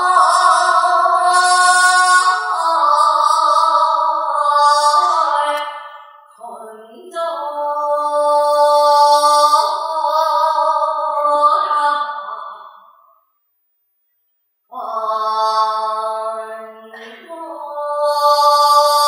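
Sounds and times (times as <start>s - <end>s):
woman singing slow melody: 0.0s - 13.1s, 14.7s - 19.0s.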